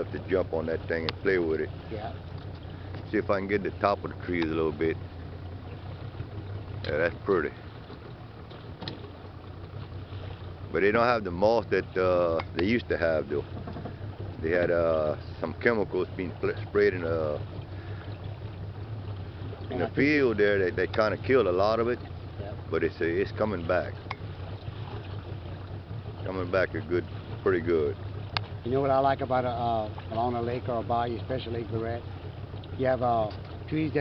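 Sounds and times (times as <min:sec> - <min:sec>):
boat motor running: 0:00.0 - 0:34.0
water wash: 0:00.0 - 0:34.0.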